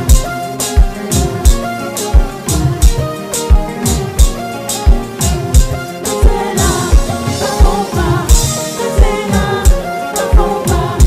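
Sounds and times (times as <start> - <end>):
keyboard chords: 0.0 - 11.0
kick drum: 0.0 - 11.0
woman singing: 6.1 - 11.0.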